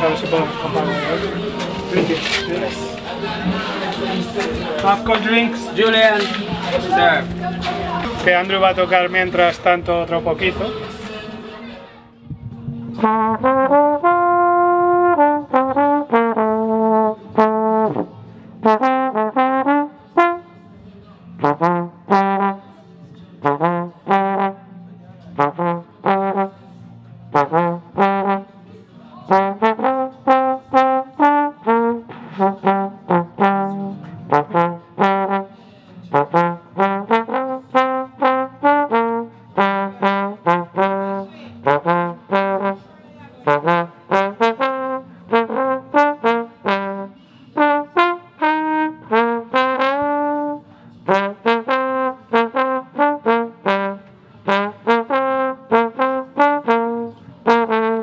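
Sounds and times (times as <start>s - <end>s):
solo trombone melody: 13.0s - 20.6s, 21.4s - 22.8s, 23.4s - 26.6s, 27.3s - 28.7s, 29.3s - 58.0s.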